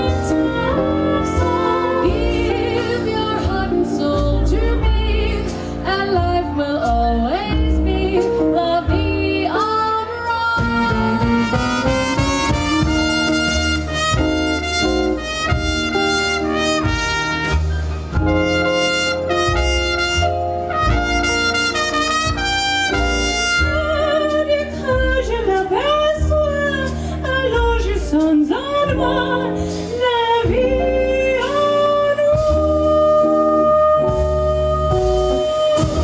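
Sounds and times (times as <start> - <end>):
trumpet lead: 0.0 - 3.6, 10.6 - 25.4
female vocal harmony: 0.0 - 11.0
swing band playing: 0.0 - 36.0.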